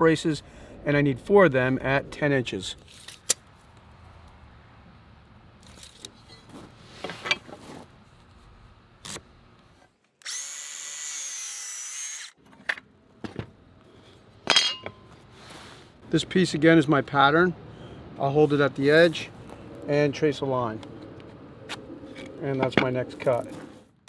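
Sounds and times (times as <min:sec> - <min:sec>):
circular saw cutting wood: 0:10.2 - 0:12.4.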